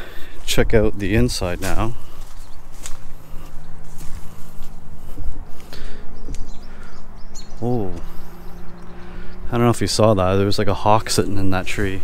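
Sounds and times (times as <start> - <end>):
footsteps through tall grass: 0.0 - 6.7.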